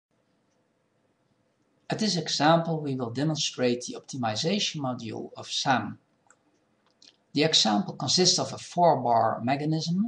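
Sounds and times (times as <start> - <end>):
faint recording hiss: 0.1 - 10.0
man speaking: 1.9 - 6.0, 7.4 - 10.0.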